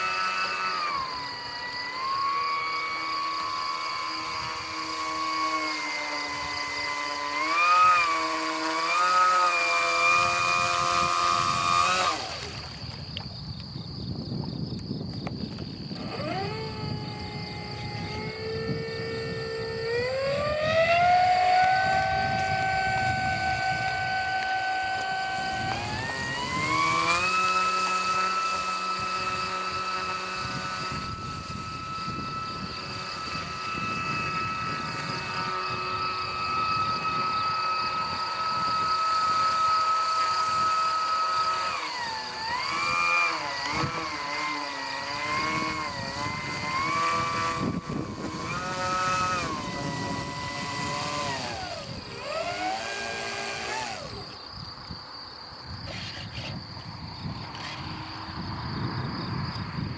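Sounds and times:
water hissing and spraying: 0:00.0 - 0:13.1, 0:21.3 - 0:54.2
model plane motor whining: 0:00.0 - 0:13.2, 0:14.8 - 0:55.0, 0:55.7 - 0:59.8.

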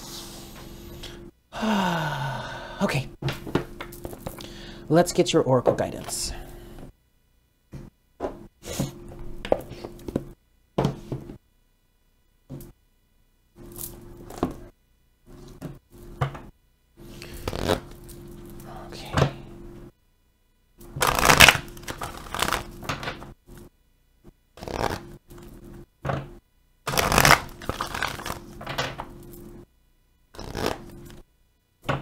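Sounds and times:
cards being shuffled: 0:17.2 - 0:18.5, 0:20.9 - 0:23.2, 0:24.6 - 0:25.5, 0:26.9 - 0:28.8, 0:30.4 - 0:31.2.

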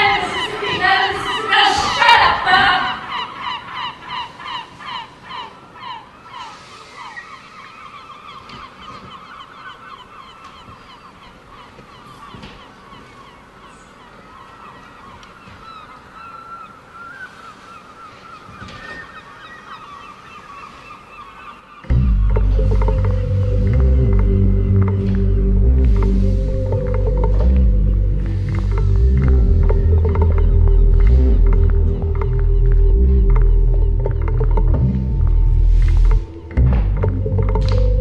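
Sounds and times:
honking calls: 0:00.0 - 0:38.0.

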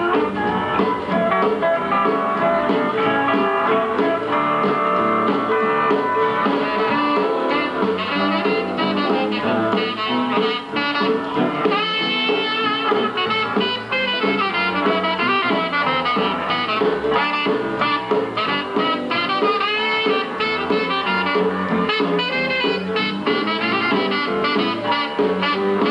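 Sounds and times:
steel guitar: 0:00.0 - 0:25.9
western swing band playing: 0:00.0 - 0:25.9
saxophones: 0:05.5 - 0:25.9.

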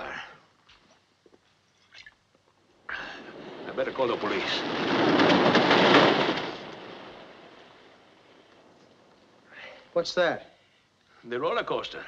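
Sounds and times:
roller coaster cars rumbling on track: 0:02.9 - 0:08.1.

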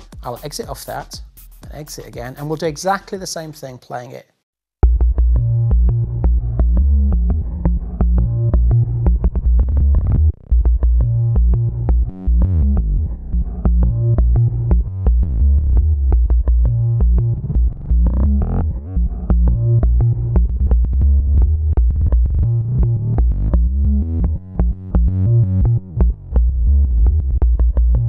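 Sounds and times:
synth bass loop with beats: 0:00.0 - 0:03.3, 0:04.8 - 0:28.0.

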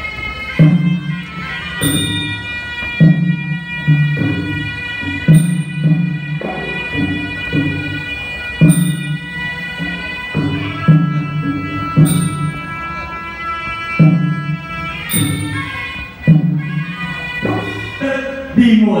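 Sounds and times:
reed pipe melody: 0:00.0 - 0:19.0
cymbal clash: 0:00.6 - 0:13.1, 0:14.0 - 0:18.0
hand drum beats: 0:01.8 - 0:12.8, 0:14.0 - 0:17.9.

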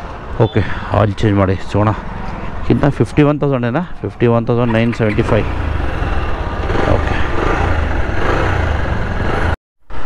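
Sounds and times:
motorcycle engine running: 0:04.7 - 0:09.6.

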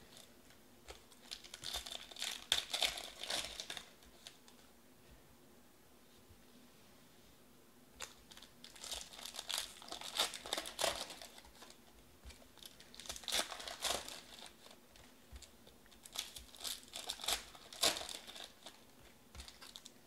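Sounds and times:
foil wrapper crinkling: 0:00.9 - 0:04.4, 0:08.0 - 0:20.0.

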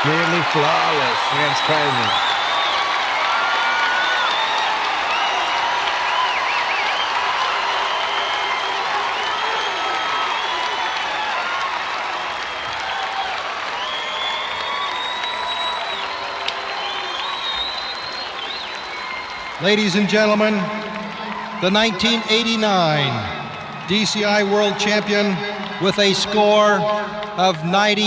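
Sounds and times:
shrill whistles: 0:00.0 - 0:11.2, 0:12.2 - 0:19.7
crowd yelling: 0:00.0 - 0:28.0
stadium crowd applauding and cheering: 0:00.0 - 0:28.0.

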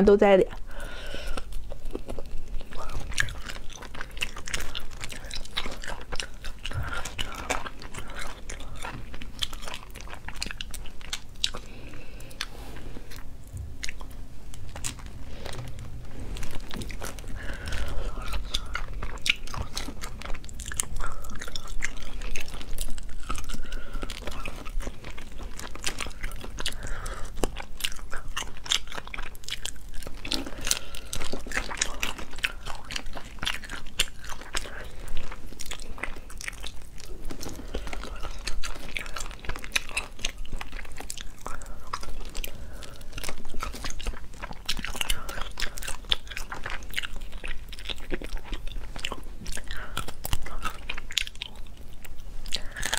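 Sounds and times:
chewing and biting: 0:00.5 - 0:52.9.

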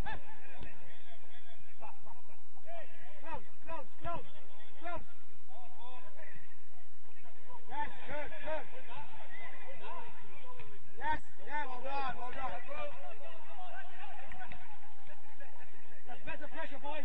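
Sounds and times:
players shouting and calling: 0:00.0 - 0:17.0.

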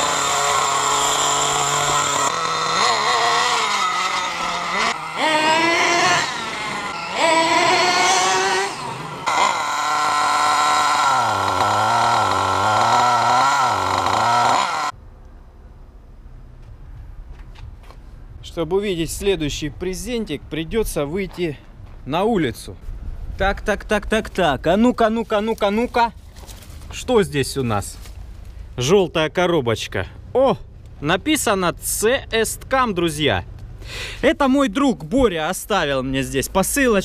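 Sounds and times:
model truck engine revving: 0:00.0 - 0:15.0.

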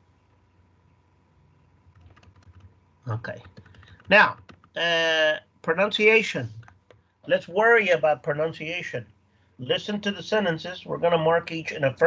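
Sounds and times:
computer keyboard clicking: 0:01.9 - 0:02.7, 0:03.3 - 0:04.8.

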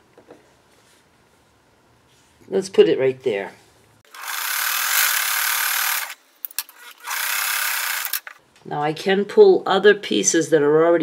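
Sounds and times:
sewing machine stitching: 0:04.1 - 0:08.3.

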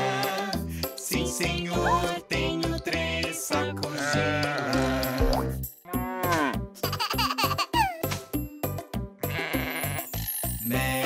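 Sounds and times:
children's song music with beat: 0:00.0 - 0:09.1, 0:10.3 - 0:11.0
cartoon sheep bleating: 0:03.8 - 0:06.6, 0:09.2 - 0:10.1.

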